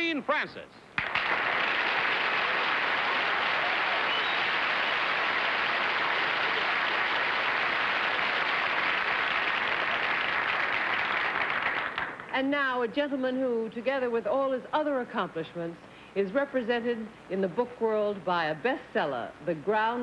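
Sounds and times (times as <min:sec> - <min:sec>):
audience applauding: 0:01.0 - 0:12.4.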